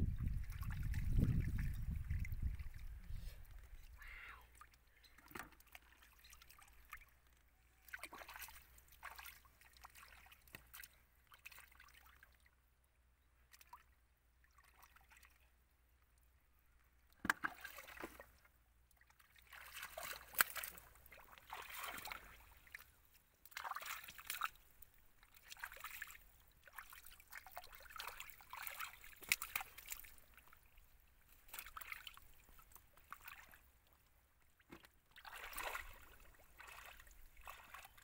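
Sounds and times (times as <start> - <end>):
hands splashing in muddy water: 7.8 - 12.1, 17.3 - 18.4, 19.0 - 24.7, 25.3 - 30.5, 31.3 - 33.6, 34.6 - 38.0
sharp slaps on water: 19.7 - 20.8, 29.1 - 30.1.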